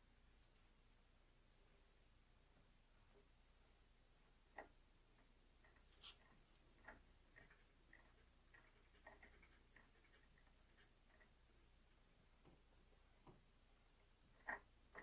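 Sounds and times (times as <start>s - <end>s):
small metal clicks and ticks: 4.5s - 11.6s, 14.3s - 15.0s.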